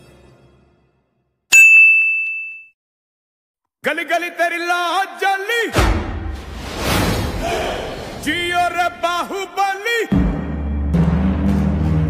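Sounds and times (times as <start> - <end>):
bell-like ding: 1.5 - 2.8.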